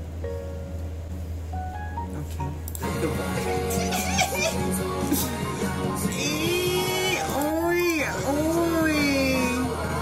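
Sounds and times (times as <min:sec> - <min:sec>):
person singing long notes: 0:02.8 - 0:10.0.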